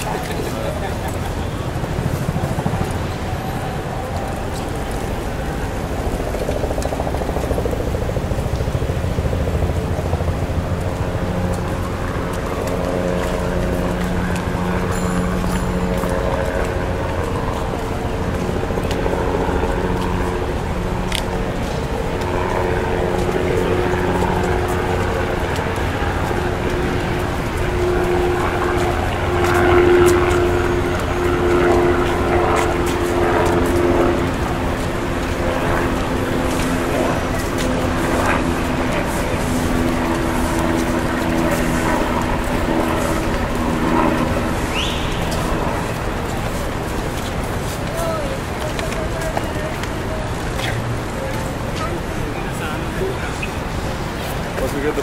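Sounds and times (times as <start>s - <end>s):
people's voices in street: 0.0s - 55.0s
traffic engines running: 0.0s - 55.0s.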